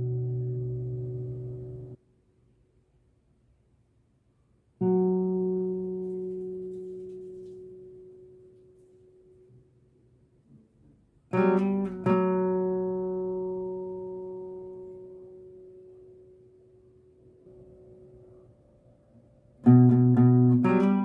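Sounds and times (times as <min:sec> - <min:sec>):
acoustic guitar notes ringing: 0:00.0 - 0:02.0, 0:04.8 - 0:09.6, 0:11.3 - 0:21.0.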